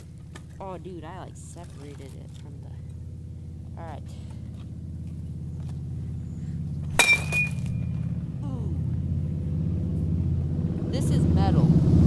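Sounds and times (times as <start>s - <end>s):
low engine hum: 0.0s - 12.0s
bat striking metal laptop lid: 6.9s - 7.8s.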